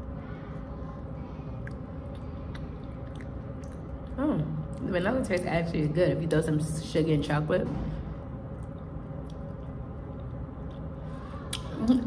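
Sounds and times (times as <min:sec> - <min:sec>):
person chewing soft food: 0:00.0 - 0:04.2, 0:08.5 - 0:11.8
room hum: 0:00.0 - 0:12.0
wet mouth clicks: 0:01.6 - 0:04.8, 0:11.5 - 0:11.8.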